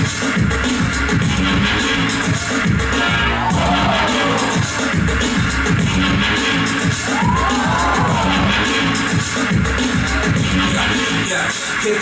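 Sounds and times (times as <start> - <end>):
breakdance music over sound system: 0.0 - 12.0.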